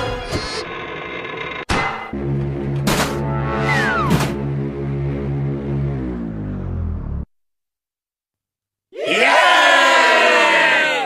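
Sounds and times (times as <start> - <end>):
cartoon music: 3.2 - 4.7
falling pitch sound effect: 3.2 - 7.2.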